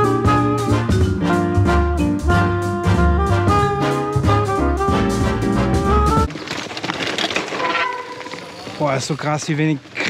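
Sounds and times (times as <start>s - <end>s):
swing brass music: 0.0s - 6.3s
mountain bike rushing on dirt trail: 6.3s - 10.0s.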